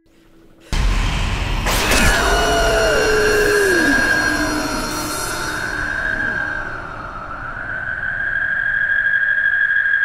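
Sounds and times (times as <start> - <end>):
loud hit with deep rumble: 0.8 - 7.6
crash: 0.8 - 9.4
high whine: 0.8 - 10.0
screeching sliding pitches: 1.7 - 10.0.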